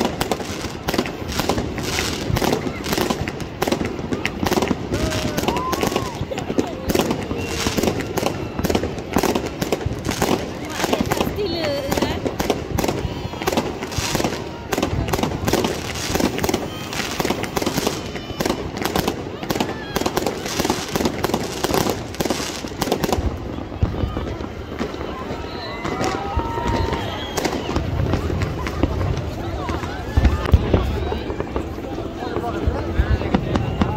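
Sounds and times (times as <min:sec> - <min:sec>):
fireworks bangs and crackling: 0:00.0 - 0:33.9.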